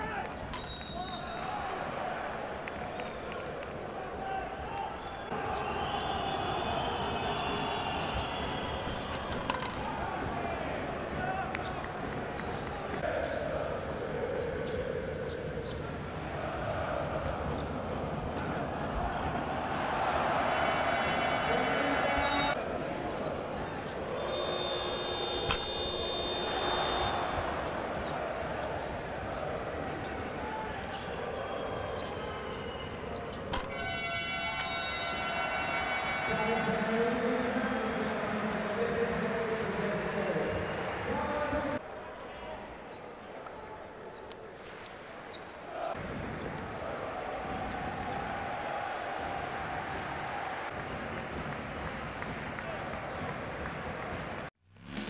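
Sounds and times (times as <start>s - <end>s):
arena crowd noise: 0.0s - 54.5s
shoe squeaks and clicks: 0.2s - 2.0s, 7.8s - 19.6s, 22.3s - 35.2s, 44.7s - 48.6s.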